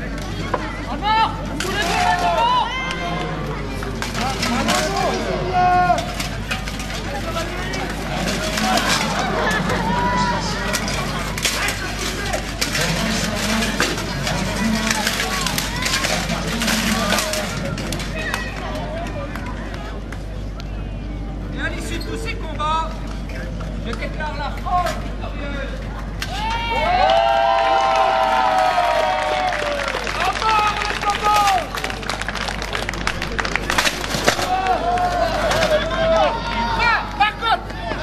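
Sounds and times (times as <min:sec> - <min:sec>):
spectators chattering: 0:00.0 - 0:38.0
clanking weapons and armour: 0:03.8 - 0:18.4, 0:33.0 - 0:36.0.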